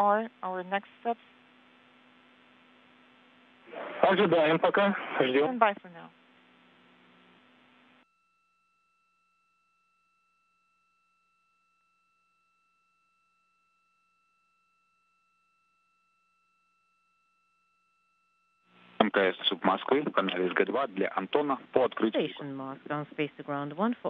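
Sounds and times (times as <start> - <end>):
faint hiss with low hum: 0.0 - 8.0, 18.8 - 23.2
faint steady electronic tones: 0.0 - 24.0.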